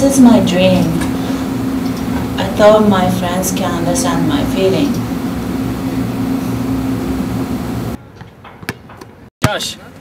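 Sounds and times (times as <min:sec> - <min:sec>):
ventilation hum: 0:00.0 - 0:08.3.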